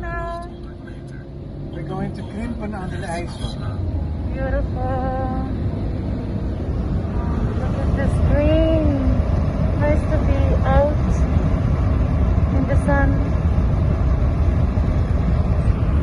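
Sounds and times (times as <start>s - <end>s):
car engine and tyres rumbling: 0.0s - 16.0s.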